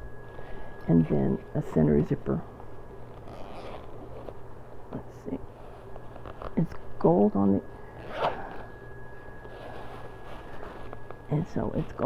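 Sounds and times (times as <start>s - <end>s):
bag zipper pulled: 3.2s - 4.2s, 8.0s - 8.7s
fabric rustling: 9.3s - 12.0s.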